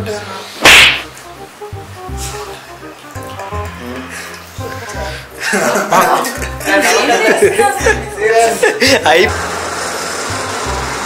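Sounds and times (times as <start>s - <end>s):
background music: 0.0s - 11.0s
whip-like swish: 0.6s - 1.1s.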